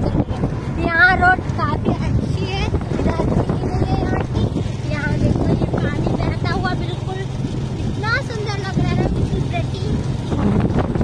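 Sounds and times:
motorcycle engine running: 0:00.0 - 0:11.0
wind buffeting microphone: 0:00.0 - 0:11.0.

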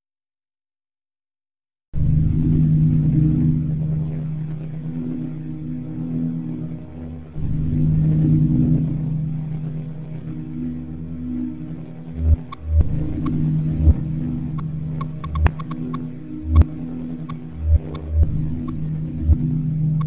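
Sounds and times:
low electronic drone: 0:02.0 - 0:20.0.

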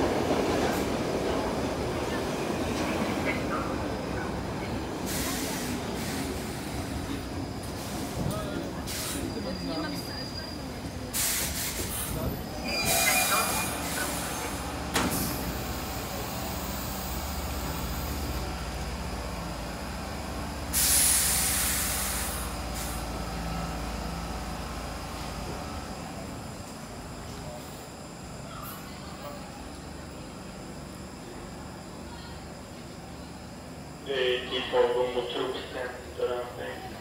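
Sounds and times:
train rumbling and braking: 0:00.0 - 0:37.0
air hiss: 0:11.1 - 0:12.1, 0:20.7 - 0:23.1
wheel squeal: 0:12.5 - 0:14.0.

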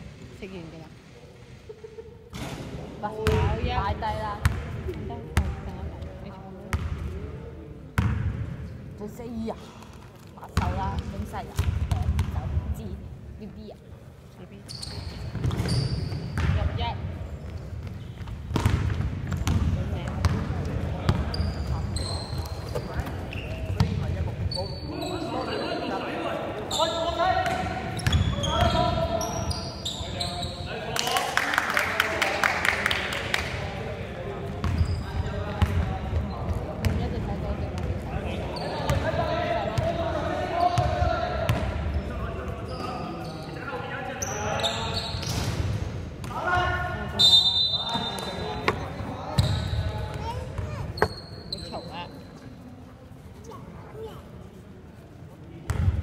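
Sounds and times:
basketball bouncing on wooden court: 0:03.2 - 0:03.6, 0:04.4 - 0:04.7, 0:06.7 - 0:07.0, 0:10.6 - 0:12.5, 0:15.3 - 0:16.7, 0:17.8 - 0:21.2, 0:27.4 - 0:28.8.

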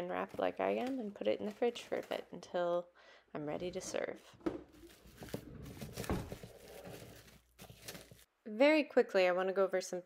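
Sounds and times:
plastic cling wrap crinkling: 0:04.7 - 0:08.3.

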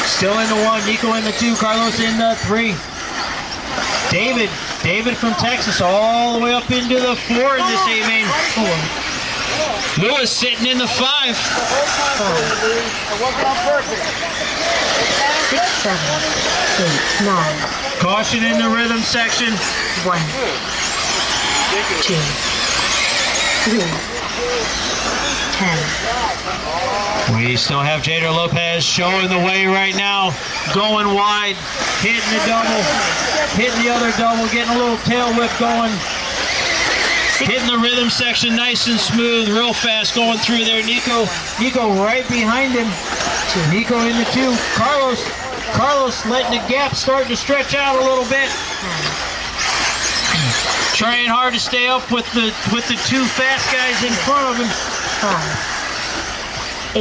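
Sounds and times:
electric rc cars whining: 0:00.0 - 0:57.0.

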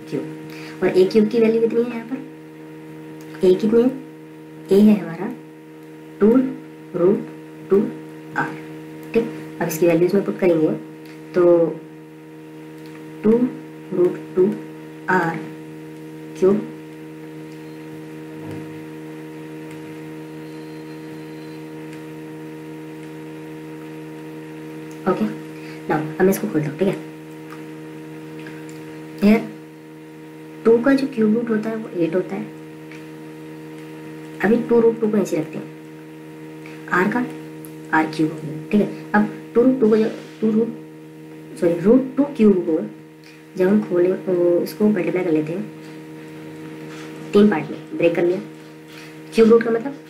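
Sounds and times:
person speaking: 0:00.0 - 0:02.3, 0:06.2 - 0:11.8, 0:13.2 - 0:15.5, 0:16.4 - 0:16.8, 0:24.9 - 0:27.1, 0:29.2 - 0:29.6, 0:34.4 - 0:35.8, 0:36.7 - 0:40.8, 0:46.9 - 0:48.6, 0:49.3 - 0:50.0
electrical hum: 0:00.0 - 0:50.0.

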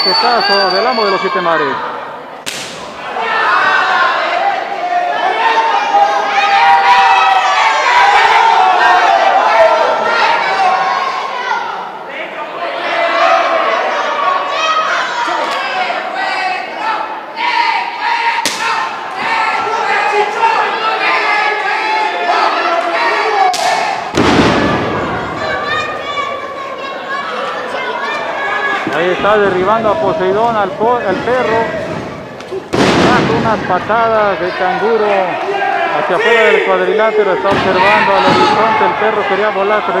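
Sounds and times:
crowd shouting: 0:00.0 - 0:40.0
open-hand chest chop smack: 0:02.4 - 0:02.8.

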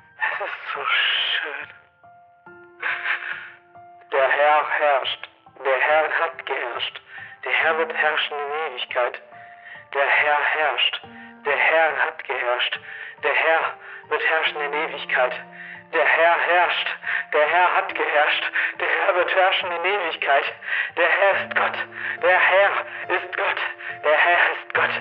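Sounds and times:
music with long held tones: 0:00.0 - 0:25.0
garbled radio voice: 0:00.2 - 0:01.7, 0:11.5 - 0:12.6, 0:16.0 - 0:25.0.

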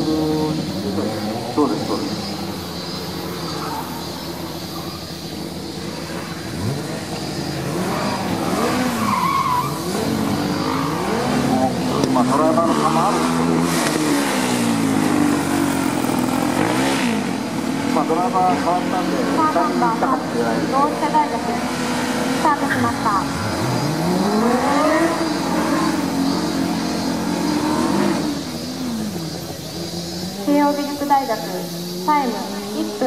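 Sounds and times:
man speaking: 0:00.0 - 0:02.3
race car engine revving: 0:00.0 - 0:33.0.

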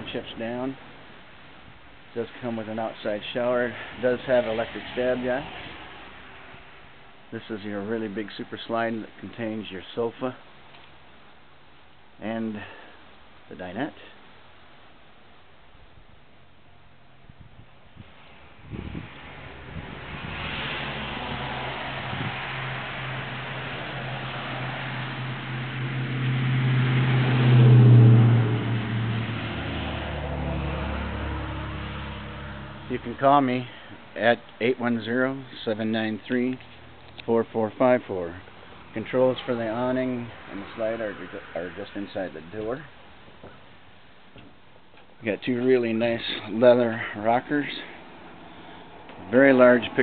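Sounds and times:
background hiss: 0:00.0 - 0:27.1, 0:30.9 - 0:50.0
vehicle engine humming: 0:18.3 - 0:34.1.

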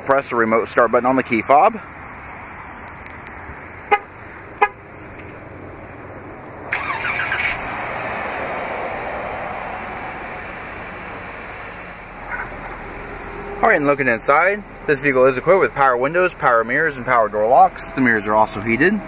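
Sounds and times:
car engine cranking and idling: 0:00.2 - 0:19.0
car horn chirps: 0:03.9 - 0:04.8.

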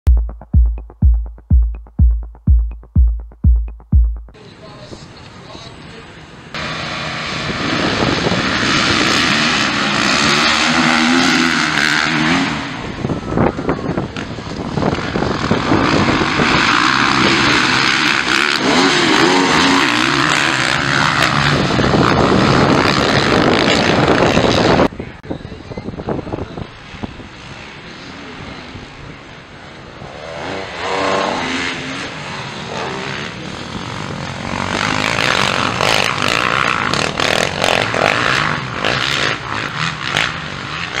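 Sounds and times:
motocross bike engines revving: 0:06.6 - 0:13.4, 0:14.2 - 0:24.9, 0:30.3 - 0:41.0.

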